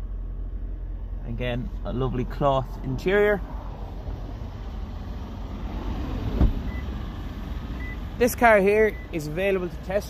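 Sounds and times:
steady low rumble: 0.0s - 8.0s
car door shutting: 6.2s - 6.9s.

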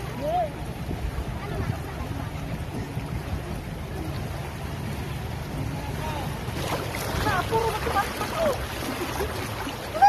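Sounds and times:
river water flowing: 0.0s - 10.0s
wind buffeting microphone: 0.0s - 10.0s
people calling and laughing: 5.6s - 10.0s.

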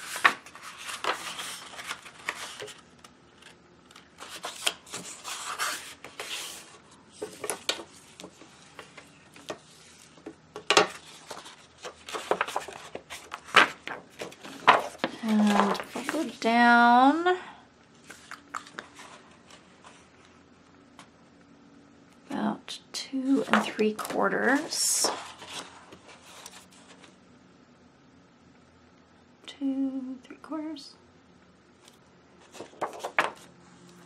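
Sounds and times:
paper rustling and crinkling: 0.0s - 16.4s, 23.3s - 27.2s, 32.4s - 33.5s.

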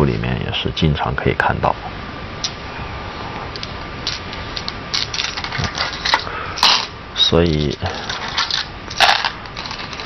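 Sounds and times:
stones clattering into wooden bowl: 4.1s - 6.9s, 7.5s - 10.0s.

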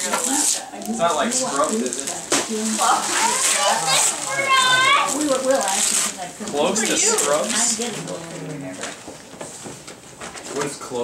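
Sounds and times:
wrapping paper tearing: 0.0s - 8.4s
children's voices: 2.8s - 5.8s
child's high-pitched voice: 2.9s - 5.2s.

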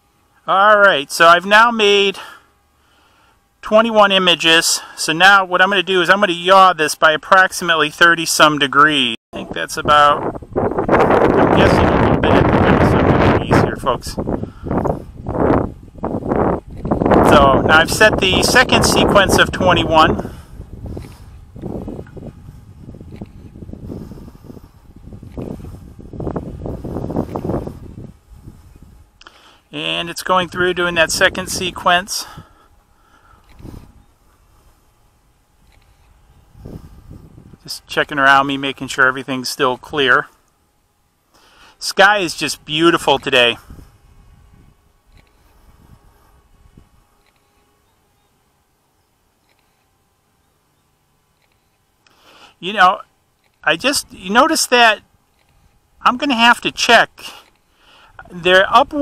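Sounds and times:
wind buffeting microphone: 9.4s - 29.2s, 30.3s - 37.8s, 42.6s - 47.3s.

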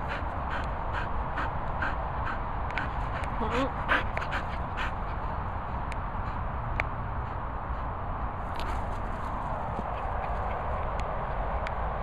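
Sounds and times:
dog panting: 0.0s - 11.0s
steady low rumble: 0.0s - 12.0s.

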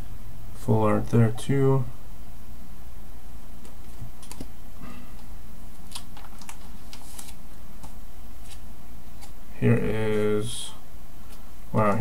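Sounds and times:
steady low hum: 0.0s - 12.0s
cards being shuffled: 3.6s - 4.5s, 5.7s - 9.4s.

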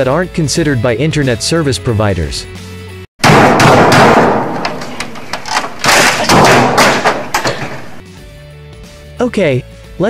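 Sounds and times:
computer being beaten thumps: 3.2s - 8.0s.

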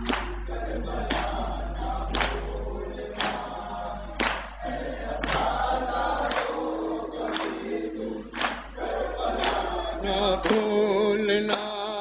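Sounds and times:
men chanting in chorus: 0.0s - 12.0s.

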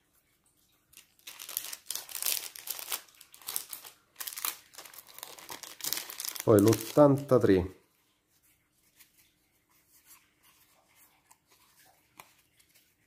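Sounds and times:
plastic bag crinkling: 0.9s - 7.7s.

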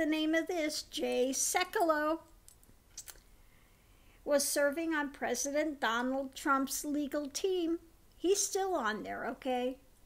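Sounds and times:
woman speaking: 0.0s - 2.3s, 4.2s - 9.9s.

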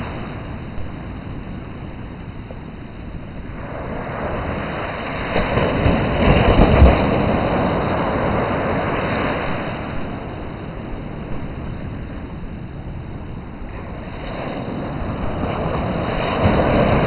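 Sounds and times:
ocean waves breaking: 0.0s - 17.0s
wind rumble on microphone: 0.0s - 17.0s.

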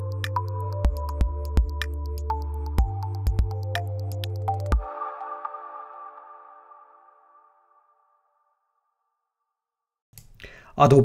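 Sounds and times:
synthesizer chord ringing: 0.0s - 8.5s.

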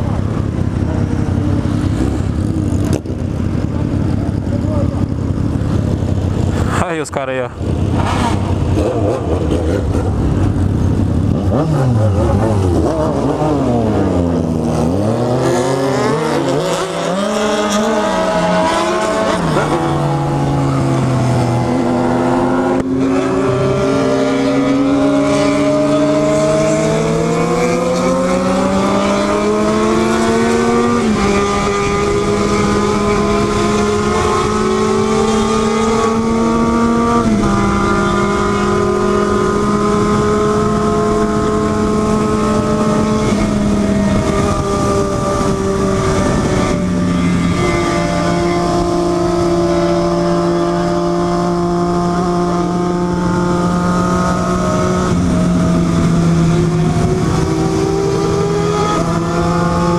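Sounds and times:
motorcycle engine shifting gears: 0.0s - 6.7s, 7.6s - 59.9s
wind rushing: 0.0s - 59.9s.

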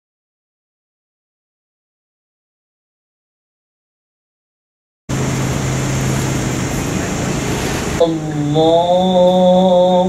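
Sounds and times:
low constant hum: 5.1s - 10.0s
outdoor background noise: 5.1s - 10.0s.

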